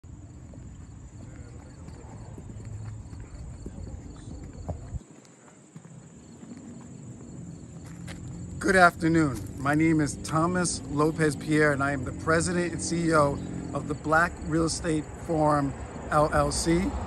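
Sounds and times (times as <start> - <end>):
footsteps on pavement: 0.1 - 11.5.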